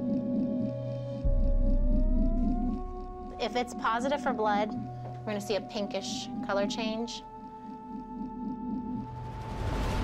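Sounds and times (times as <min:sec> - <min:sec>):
deep bass drone: 0:00.0 - 0:05.2.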